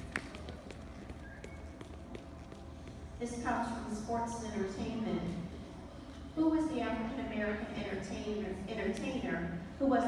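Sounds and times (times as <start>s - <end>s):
audience hand claps: 0.0s - 0.6s.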